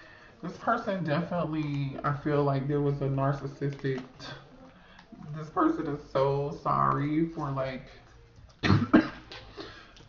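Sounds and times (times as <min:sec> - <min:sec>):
person coughing: 0:08.6 - 0:09.8.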